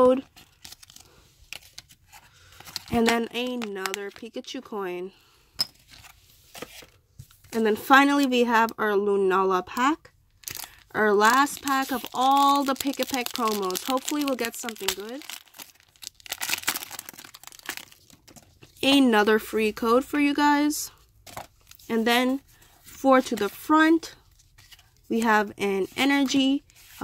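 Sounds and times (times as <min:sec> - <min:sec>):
handling plastic packaging: 0:00.2 - 0:04.6, 0:10.3 - 0:18.8
foil wrapper crinkling: 0:00.3 - 0:04.2, 0:10.4 - 0:18.6.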